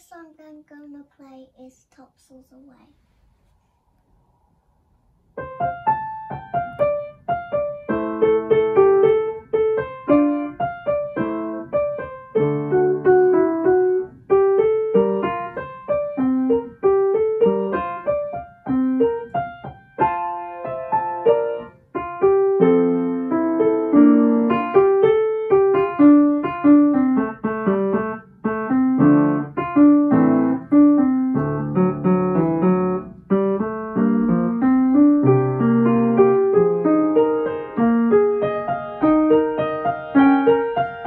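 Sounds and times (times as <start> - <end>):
upright piano playing: 5.3 - 41.0.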